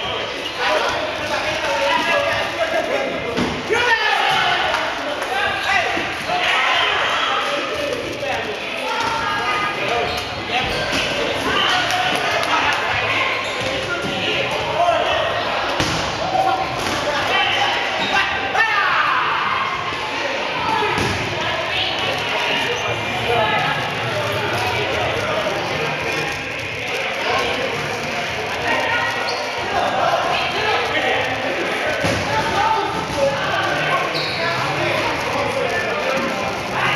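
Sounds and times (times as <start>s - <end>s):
players shouting and chattering: 0.0s - 36.9s
dodgeballs bouncing on hardwood floor: 15.7s - 17.3s, 20.7s - 21.5s, 31.7s - 34.0s.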